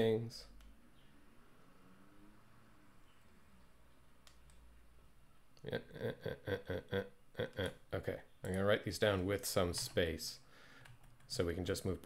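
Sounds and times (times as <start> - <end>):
faint clicks: 4.2 - 4.7
computer keyboard typing: 10.8 - 11.4.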